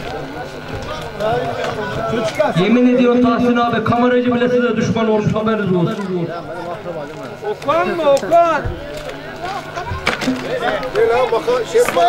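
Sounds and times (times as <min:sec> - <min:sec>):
several voices talking: 0:00.0 - 0:12.0.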